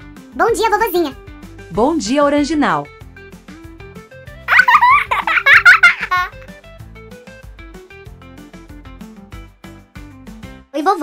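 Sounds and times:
light background music: 0:00.0 - 0:11.0
cartoon character giggling: 0:04.5 - 0:06.4.

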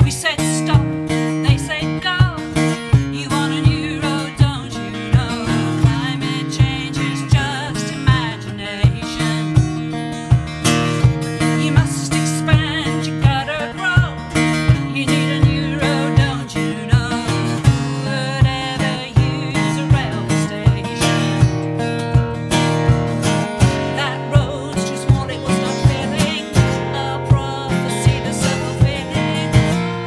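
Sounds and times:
strummed acoustic guitar: 0:00.0 - 0:30.0
woman singing: 0:00.0 - 0:30.0.

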